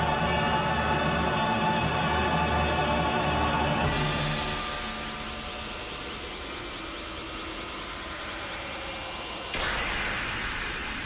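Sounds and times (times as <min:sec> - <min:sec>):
loud whoosh: 0:09.6 - 0:11.0.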